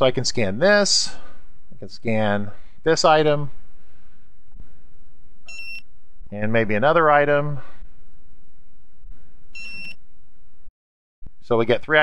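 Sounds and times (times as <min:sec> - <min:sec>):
barcode scanner beep: 0:05.5 - 0:05.8, 0:09.6 - 0:10.0.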